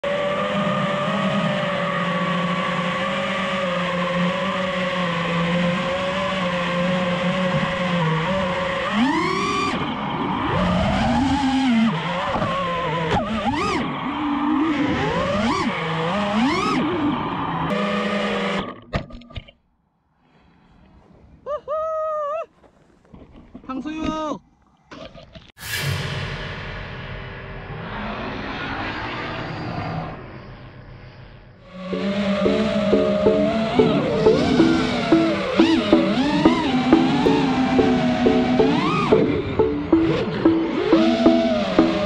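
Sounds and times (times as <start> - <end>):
drone motors whining: 31.6 - 42.0.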